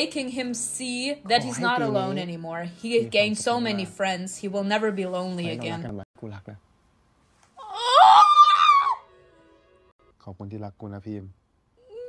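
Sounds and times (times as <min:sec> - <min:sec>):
woman squealing: 0:07.6 - 0:09.0.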